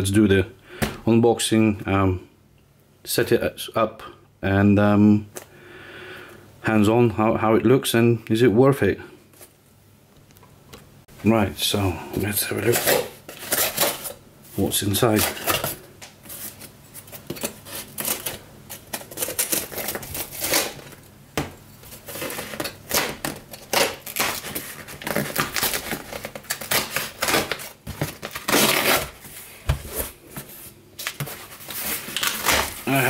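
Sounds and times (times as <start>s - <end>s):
tape and cardboard tearing: 12.6s - 14.2s, 16.3s - 21.0s, 21.8s - 29.3s, 31.0s - 33.0s
blade slitting packing tape: 17.3s - 21.0s, 22.1s - 29.2s.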